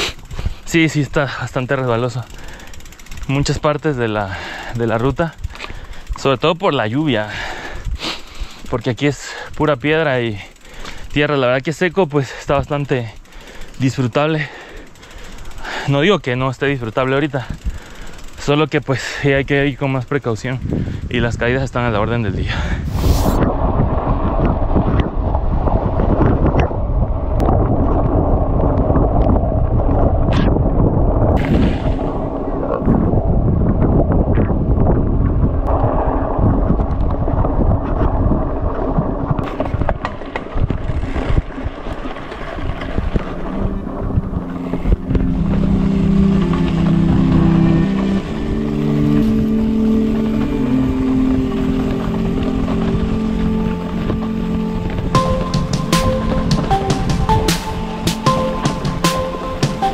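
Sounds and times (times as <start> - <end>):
mountain bike rattling on trail: 0.0 - 22.3, 35.8 - 44.9
wind buffeting microphone: 19.3 - 58.4
music with held notes: 43.2 - 59.9.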